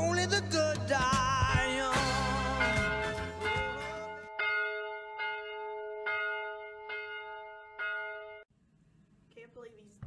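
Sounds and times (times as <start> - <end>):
church bell tolling: 2.6 - 8.5.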